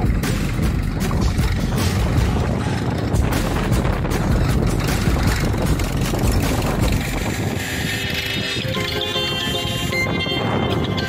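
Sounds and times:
music: 0.0s - 11.0s
tractor engine rumbling: 0.0s - 11.0s
wind buffeting microphone: 0.0s - 11.0s.

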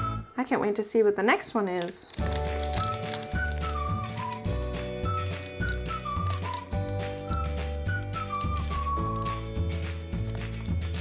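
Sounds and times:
upbeat instrumental music: 2.3s - 11.0s.

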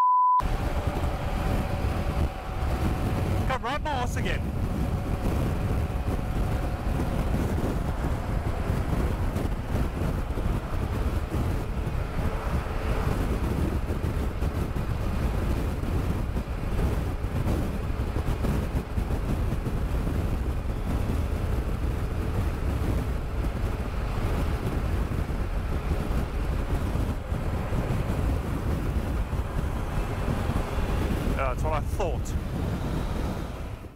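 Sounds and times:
wind rushing over microphone: 0.4s - 33.9s.

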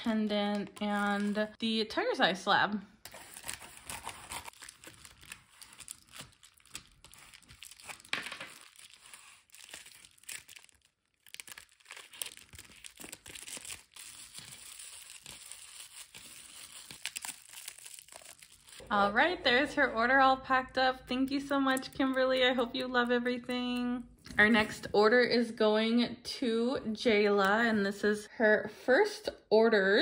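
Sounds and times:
bubble wrap crinkling: 3.1s - 18.9s.

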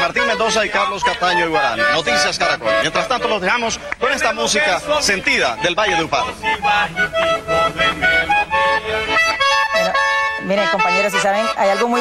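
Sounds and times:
button accordion playing lively melody: 0.0s - 12.0s.

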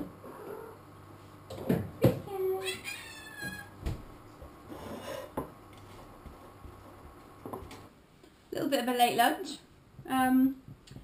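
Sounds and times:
pet's high-pitched cry: 2.6s - 3.7s.

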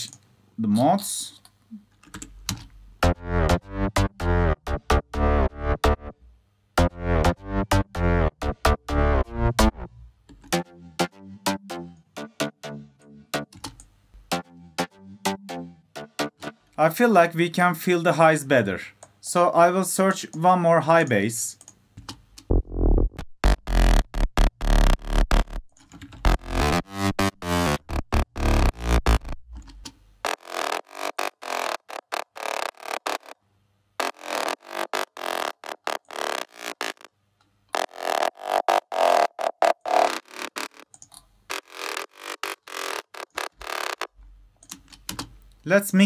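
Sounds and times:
synthesizer bass line: 3.0s - 6.2s, 6.8s - 13.5s, 14.3s - 16.6s, 22.5s - 29.5s, 34.0s - 37.1s, 37.8s - 40.9s, 41.5s - 44.1s
deep sub-bass: 6.8s - 10.1s, 22.5s - 29.5s.

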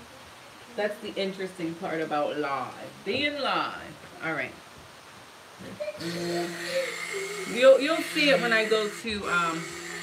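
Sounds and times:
stick blender motor whining: 6.0s - 10.0s.

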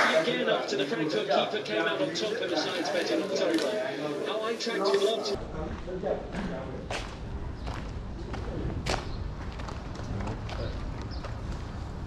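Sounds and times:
faint voices: 0.0s - 8.8s
low street rumble: 5.2s - 12.0s.

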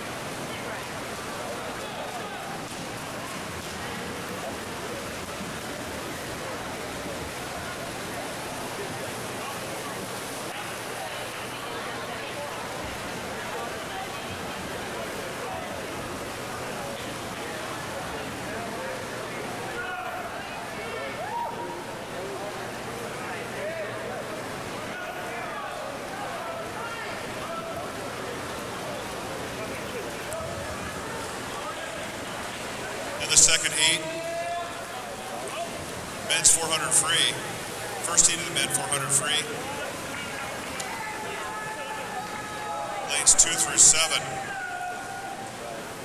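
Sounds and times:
distant crowd chatter: 0.0s - 46.0s
swimmers splashing in pool: 0.0s - 46.0s
swimmers splashing: 24.6s - 46.0s
crowd shouting and cheering: 33.2s - 46.0s.

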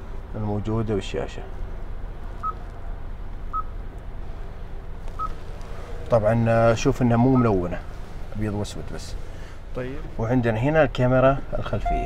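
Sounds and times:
steady low hum: 0.0s - 12.0s
short touchscreen beeps: 11.7s - 12.0s.

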